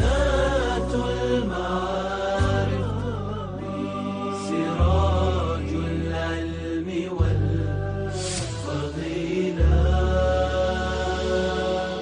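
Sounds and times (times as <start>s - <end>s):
low bass drone: 0.0s - 12.0s
person singing ornamented melody: 0.0s - 12.0s.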